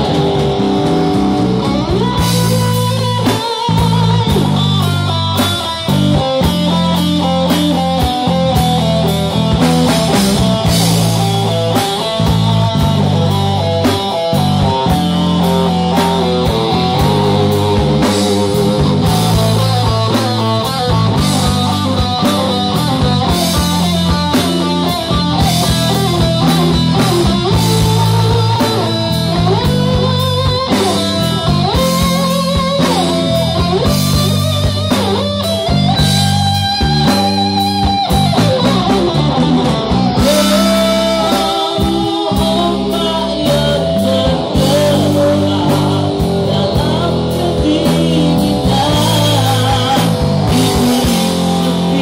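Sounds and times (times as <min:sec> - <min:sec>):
bass line: 0:00.0 - 0:52.0
drum kit: 0:00.0 - 0:52.0
electric guitar lead: 0:00.0 - 0:52.0.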